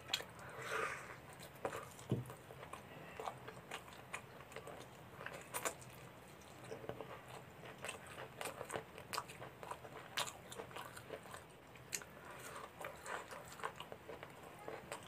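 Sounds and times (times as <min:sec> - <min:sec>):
wet mouth chewing: 0:01.2 - 0:15.0.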